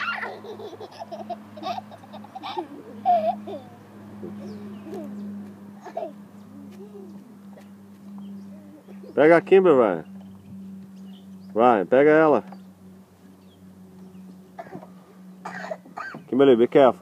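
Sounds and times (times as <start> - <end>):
toddler babbling and giggling: 0.0 - 5.2, 5.8 - 7.7, 8.5 - 9.2
steady low hum: 0.0 - 17.0.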